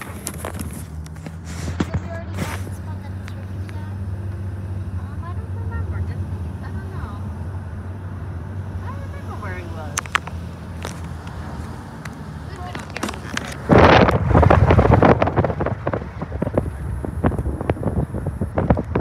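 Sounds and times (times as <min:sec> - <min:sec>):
car engine and road hum: 0:00.0 - 0:19.0.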